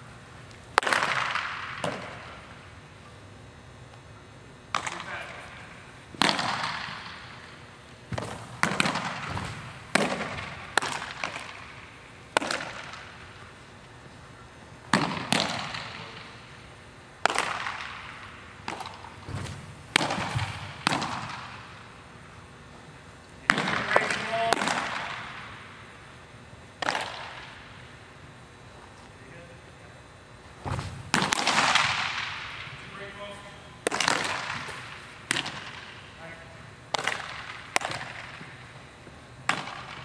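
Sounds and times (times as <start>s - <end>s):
baseballs smacking into mitts: 0.7s - 2.5s, 4.7s - 13.6s, 14.8s - 16.5s, 17.2s - 21.9s, 23.4s - 25.7s, 26.8s - 27.8s, 30.6s - 36.1s, 36.9s - 38.6s, 39.4s - 40.0s.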